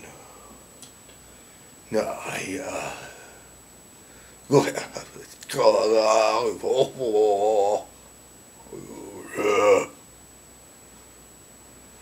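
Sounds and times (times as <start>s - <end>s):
man murmuring: 1.9s - 3.4s, 4.5s - 7.9s, 8.6s - 10.0s
man croaking grunt: 8.6s - 10.0s.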